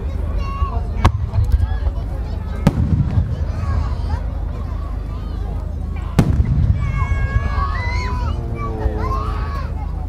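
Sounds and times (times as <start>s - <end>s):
low rolling echo: 0.0s - 10.0s
firework shell bursting: 6.2s - 7.3s.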